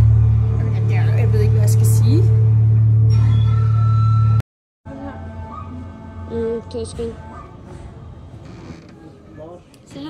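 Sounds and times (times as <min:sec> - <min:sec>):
low ambient drone: 0:00.0 - 0:09.8.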